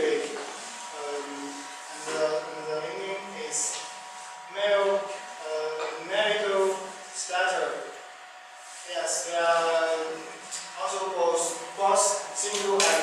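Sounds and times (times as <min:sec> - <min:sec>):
indistinct speech: 0:08.9 - 0:13.0.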